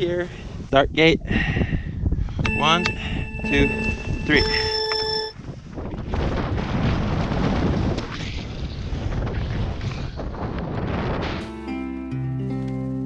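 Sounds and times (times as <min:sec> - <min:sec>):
wind on microphone: 0:00.0 - 0:11.4.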